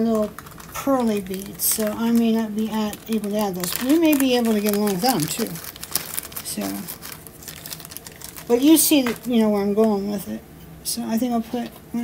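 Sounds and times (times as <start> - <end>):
plastic crinkling: 0.0 - 10.0.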